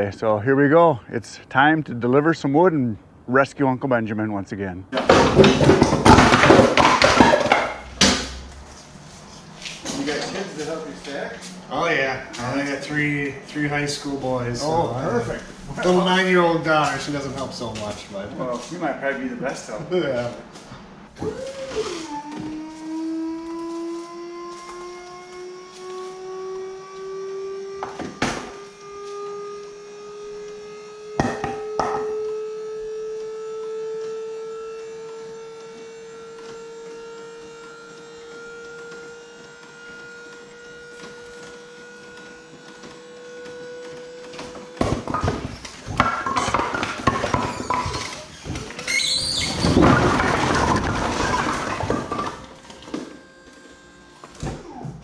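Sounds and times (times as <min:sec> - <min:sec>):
firewood logs clattering onto concrete: 0:05.0 - 0:08.4, 0:44.8 - 0:52.6
sharp knocks: 0:05.0 - 0:08.4
hydraulic pump whining: 0:20.3 - 0:55.0.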